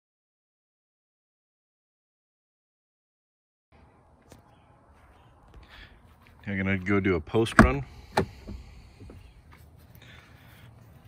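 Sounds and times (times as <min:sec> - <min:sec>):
outdoor background noise: 0:03.7 - 0:11.0
faint scuffs: 0:04.2 - 0:11.0.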